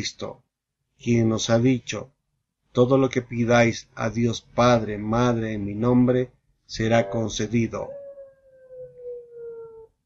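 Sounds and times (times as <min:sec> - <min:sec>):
man singing long note: 0:06.8 - 0:07.9.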